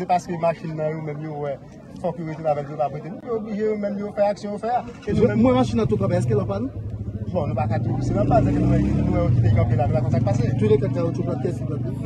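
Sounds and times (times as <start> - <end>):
men talking: 0.0 - 12.0
engine humming: 4.8 - 12.0.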